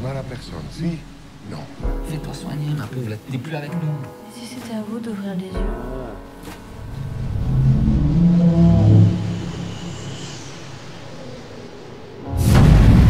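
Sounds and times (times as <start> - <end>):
deep rumbling swell: 0.0 - 3.4, 5.6 - 13.0.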